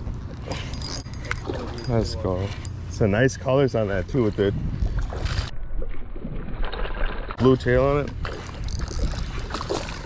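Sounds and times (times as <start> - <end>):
wind rumble on microphone: 3.8 - 6.6, 7.3 - 10.0
fish splashing at water surface: 8.2 - 10.0.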